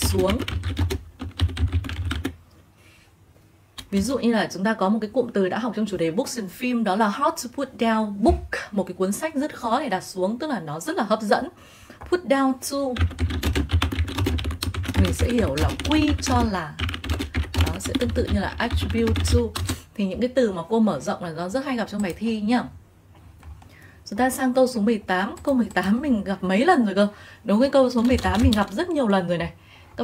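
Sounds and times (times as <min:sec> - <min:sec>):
computer keyboard typing: 0:00.0 - 0:02.4, 0:12.9 - 0:19.8, 0:28.0 - 0:28.8.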